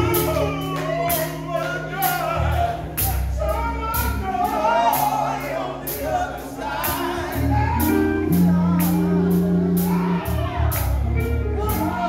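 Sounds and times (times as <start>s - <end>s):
band accompaniment: 0.0s - 12.0s
male quartet singing in harmony: 0.0s - 12.0s.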